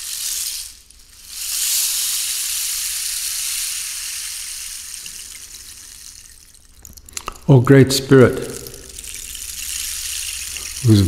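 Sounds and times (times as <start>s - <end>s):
running water: 0.0s - 11.0s
man's voice: 7.5s - 8.8s.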